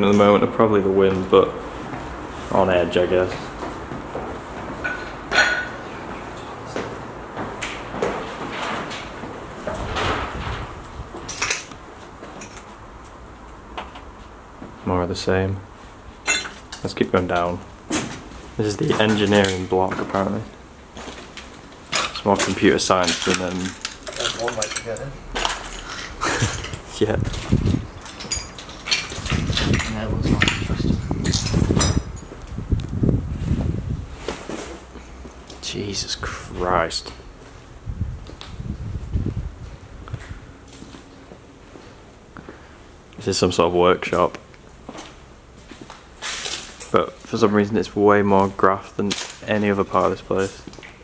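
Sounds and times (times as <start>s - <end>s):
glass clinks: 4.8s - 5.8s, 16.3s - 16.7s, 28.0s - 32.4s
footsteps over broken glass: 21.0s - 32.5s.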